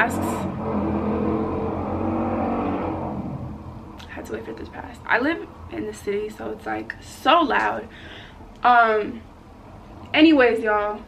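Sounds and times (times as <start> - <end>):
vehicle engine passing: 0.0 - 4.4.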